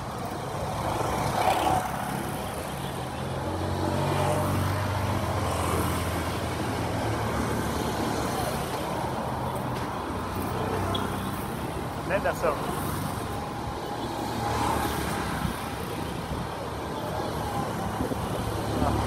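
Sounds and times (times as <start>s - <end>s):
vehicles passing: 0.0s - 19.0s.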